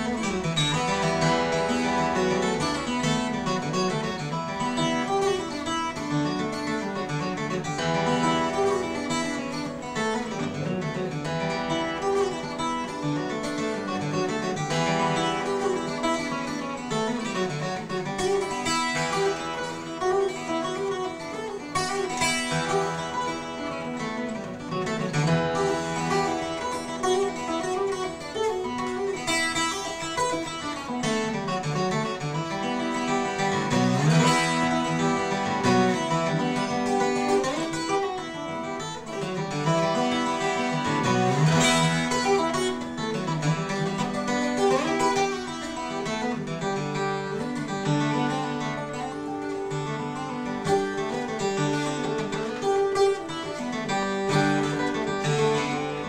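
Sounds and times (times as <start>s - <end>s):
twelve-string acoustic guitar: 0.0s - 56.0s.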